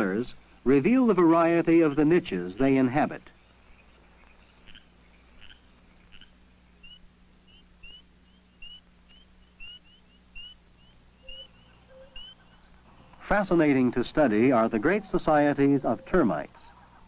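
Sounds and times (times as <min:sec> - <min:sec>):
steady low hum: 0:00.0 - 0:17.0
faint rising animal chirps: 0:04.2 - 0:12.9.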